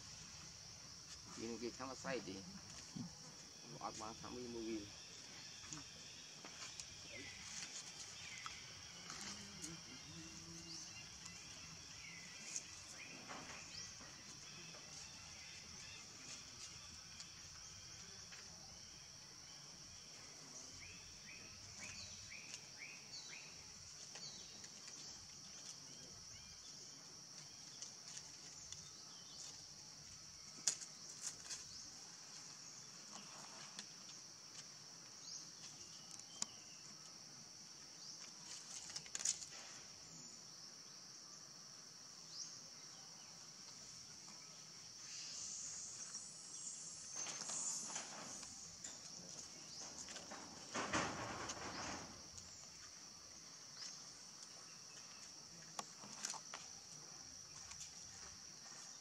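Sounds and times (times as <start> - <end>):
insect chorus drone: 0.0 - 59.0
rustling and scuffing: 6.3 - 9.6.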